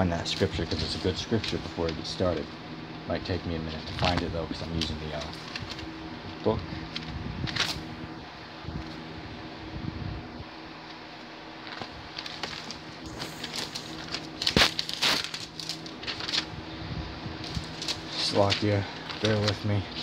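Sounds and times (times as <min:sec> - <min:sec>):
low steady hum: 0:00.0 - 0:20.0
paper pages turning: 0:00.2 - 0:02.4, 0:03.7 - 0:05.9, 0:06.9 - 0:07.8, 0:11.6 - 0:16.6, 0:17.4 - 0:20.0.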